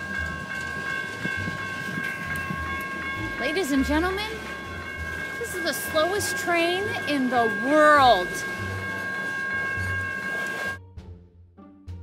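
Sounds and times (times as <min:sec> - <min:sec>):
high ringing tones: 0:00.0 - 0:10.8
train rumbling past: 0:00.0 - 0:10.8
quiet music: 0:00.0 - 0:12.0.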